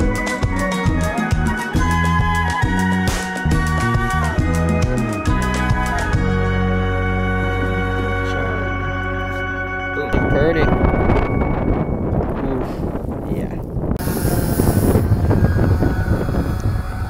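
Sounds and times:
background music: 0:00.0 - 0:12.1
wind buffeting microphone: 0:10.1 - 0:17.0.

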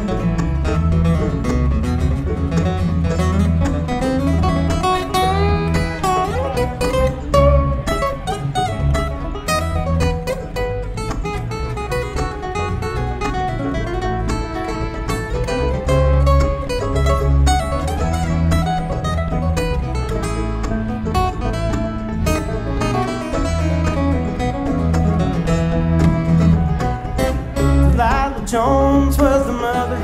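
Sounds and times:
bluegrass string band playing: 0:00.0 - 0:30.0
fast picked acoustic guitar: 0:00.0 - 0:30.0
steady bass line: 0:00.0 - 0:30.0.

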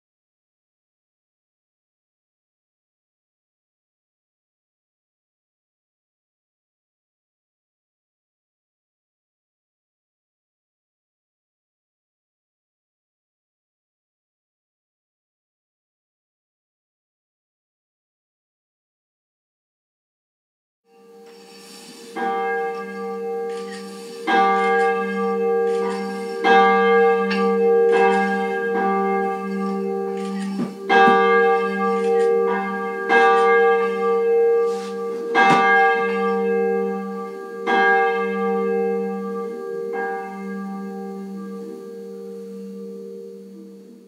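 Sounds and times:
church bells ringing: 0:20.9 - 0:44.0.

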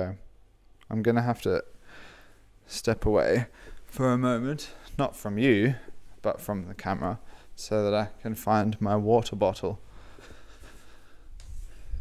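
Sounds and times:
person moving about in a room: 0:00.6 - 0:12.0.

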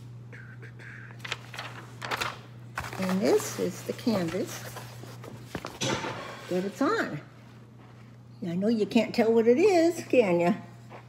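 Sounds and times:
paper rustling and crackling: 0:01.2 - 0:05.9.

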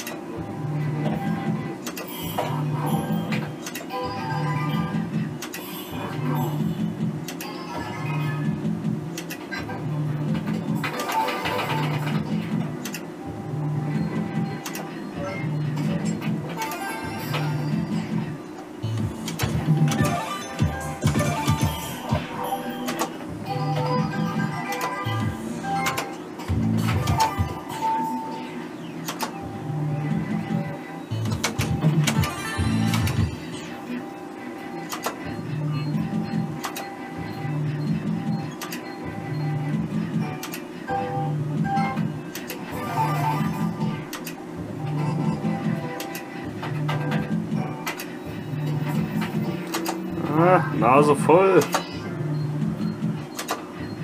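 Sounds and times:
slot machine spin tune: 0:00.0 - 0:54.0.

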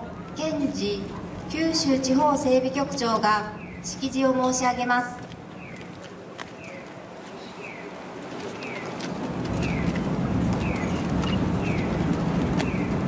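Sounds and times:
low rumbling noise: 0:00.0 - 0:13.0.

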